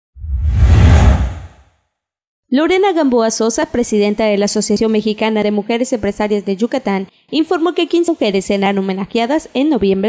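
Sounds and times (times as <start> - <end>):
deep rumble: 0.2 - 1.6
whoosh sound effect: 0.2 - 1.6.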